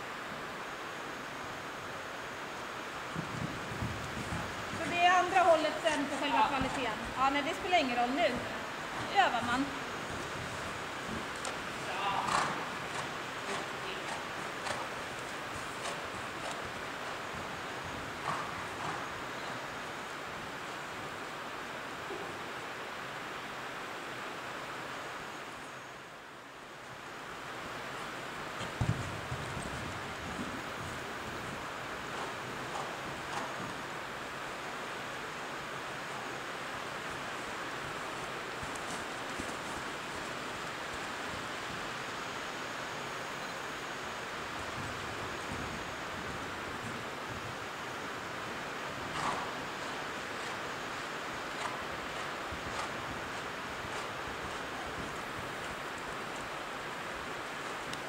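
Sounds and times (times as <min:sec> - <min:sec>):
heavy rain on a metal roof: 0:00.0 - 0:05.6, 0:08.4 - 0:19.3, 0:20.1 - 0:43.4, 0:44.1 - 0:58.0
soft thuds: 0:28.7 - 0:29.4.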